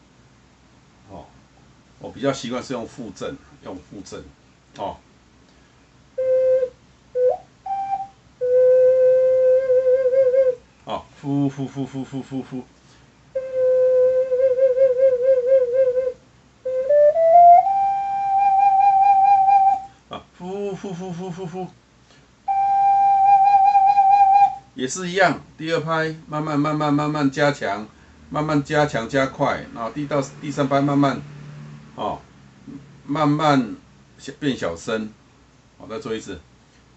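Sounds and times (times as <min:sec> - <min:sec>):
ocarina notes: 0:06.2 - 0:10.6, 0:13.3 - 0:19.9, 0:22.5 - 0:24.7.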